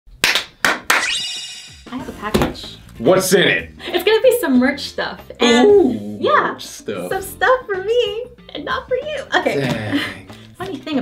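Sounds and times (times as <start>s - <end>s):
hand claps: 0.1s - 1.2s.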